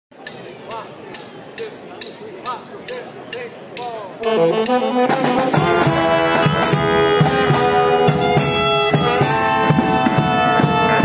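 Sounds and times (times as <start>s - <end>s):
murmur of voices: 0.1s - 11.0s
sharp count-in clicks: 0.2s - 4.8s.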